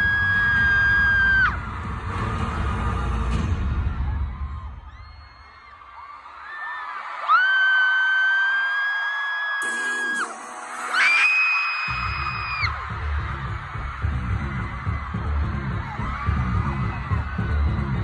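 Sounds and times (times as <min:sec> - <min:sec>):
fans screaming: 0:00.0 - 0:01.8, 0:03.7 - 0:18.0
concert music with heavy bass: 0:00.0 - 0:04.8, 0:09.6 - 0:18.0.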